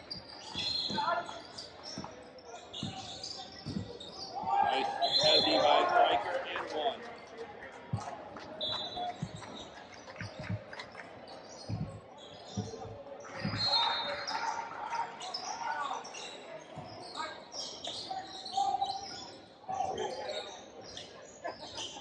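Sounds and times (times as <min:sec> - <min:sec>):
voices and shouts: 0:04.2 - 0:07.0, 0:13.2 - 0:16.4, 0:18.2 - 0:20.6.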